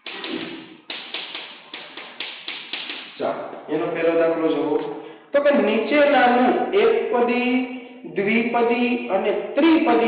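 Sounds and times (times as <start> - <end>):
chalk tapping on chalkboard: 0.0 - 3.2
man speaking: 3.2 - 10.0.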